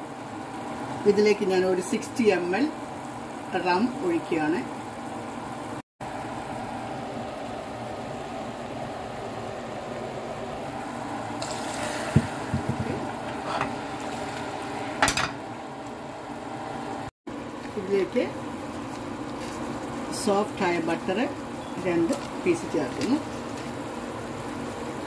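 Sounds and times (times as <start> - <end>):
melted sugar bubbling: 2.3 - 25.0
water poured onto hot caramel: 11.4 - 12.8.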